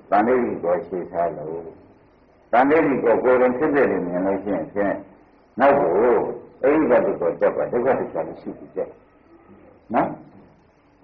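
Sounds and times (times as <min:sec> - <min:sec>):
man giving a sermon: 0:00.0 - 0:01.8, 0:02.5 - 0:09.1, 0:09.8 - 0:10.5.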